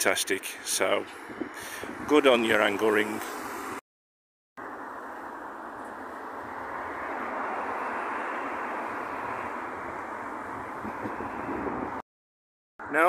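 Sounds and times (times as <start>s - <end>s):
road traffic passing: 0.0s - 3.8s, 4.6s - 12.0s.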